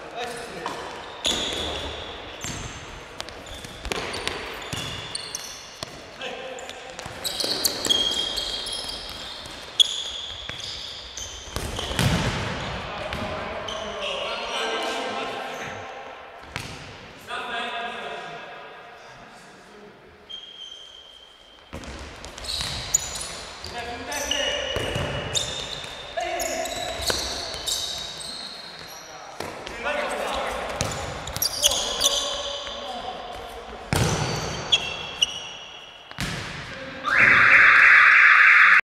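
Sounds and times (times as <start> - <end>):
shoes squeaking: 0.5 - 12.1, 20.3 - 29.4, 30.2 - 36.3
ball kicked and thudding: 11.6 - 12.5.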